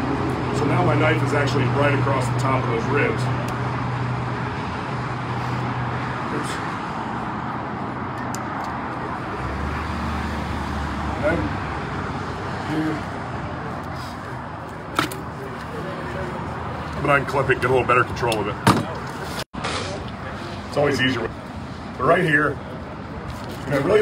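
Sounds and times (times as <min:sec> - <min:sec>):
road traffic: 0:00.0 - 0:24.0
vehicle engine rumble: 0:00.0 - 0:24.0.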